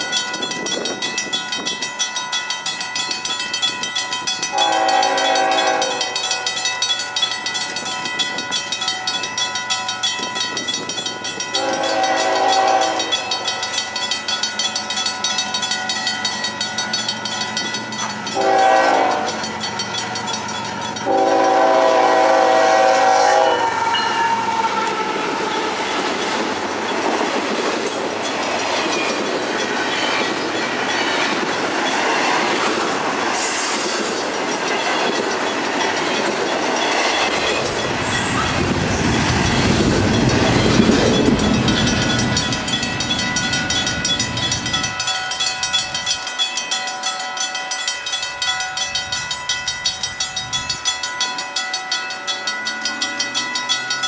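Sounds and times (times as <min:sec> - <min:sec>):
crossing bell ringing: 0:00.0 - 0:54.0
deep train rumble: 0:00.0 - 0:54.0
train wheel and rail noise: 0:00.0 - 0:54.0
locomotive horn: 0:04.5 - 0:06.2, 0:11.5 - 0:13.4, 0:18.4 - 0:19.5, 0:21.0 - 0:25.5.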